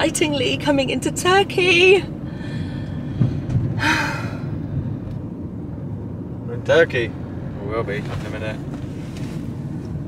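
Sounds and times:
engine and road rumble: 0.0 - 10.0
breathy gasp: 2.2 - 4.6.

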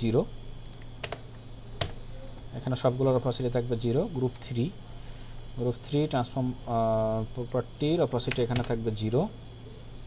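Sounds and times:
computer keyboard keystrokes: 0.6 - 1.2, 7.4 - 8.8.

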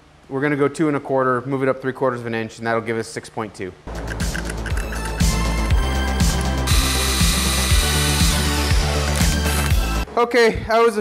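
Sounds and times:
music with a steady beat: 3.9 - 10.1
power drill boring through steel: 6.4 - 8.8.

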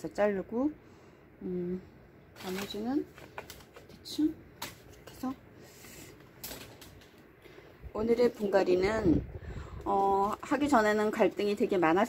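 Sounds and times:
faint handling noise: 2.3 - 9.1.

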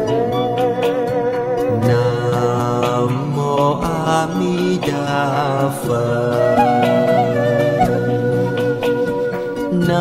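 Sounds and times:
sustained instrumental music: 0.0 - 10.0.

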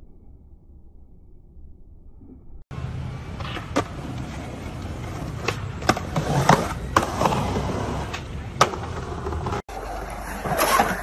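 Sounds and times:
skateboard rolling on concrete: 2.7 - 11.0
skateboard clacks: 3.3 - 11.0.

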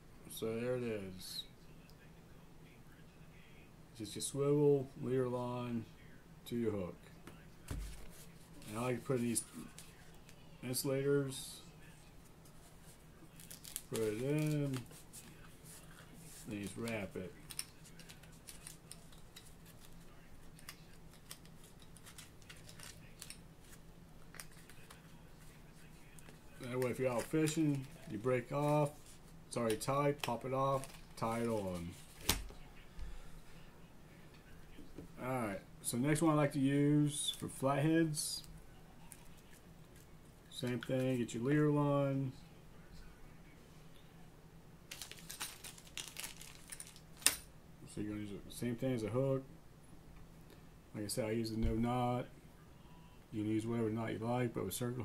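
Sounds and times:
low steady hum: 0.0 - 55.0
fishing line clicks and rustles: 16.0 - 25.1, 44.9 - 47.4
fishing tackle crinkling and clicking: 44.9 - 47.4.

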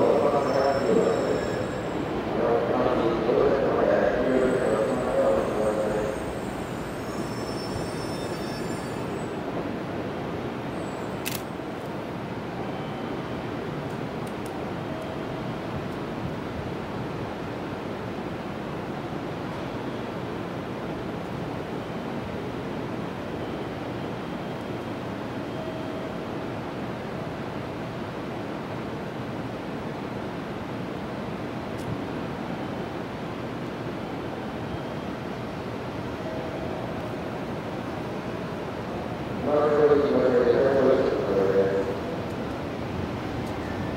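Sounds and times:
distant electric train rumble: 0.0 - 43.9.

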